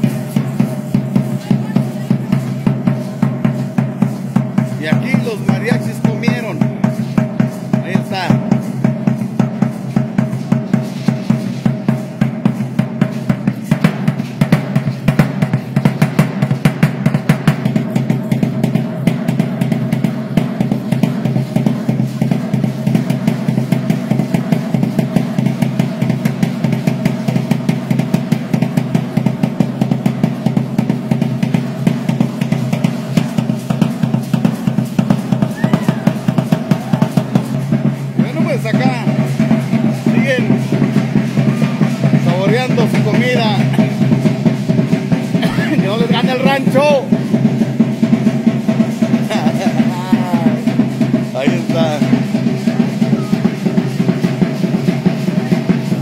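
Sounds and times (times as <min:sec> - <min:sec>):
drums beaten with sticks: 0:00.0 - 0:56.0.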